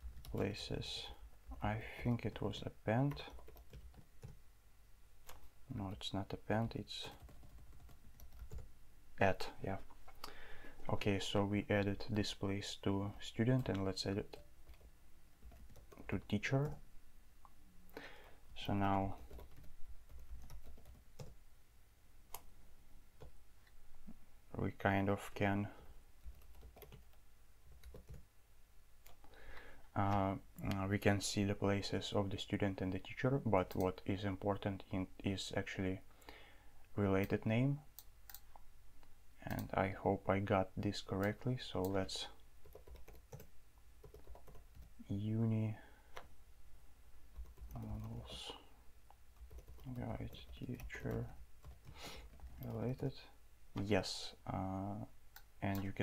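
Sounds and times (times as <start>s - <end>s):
keyboard typing: 3.0s - 4.4s, 7.0s - 8.7s, 13.6s - 16.8s, 18.6s - 21.4s, 26.2s - 28.2s, 42.6s - 45.0s, 47.3s - 48.5s, 49.4s - 53.0s.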